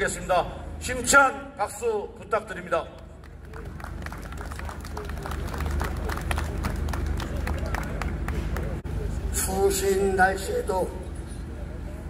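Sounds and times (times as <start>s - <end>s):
crowd clapping: 3.0s - 8.9s.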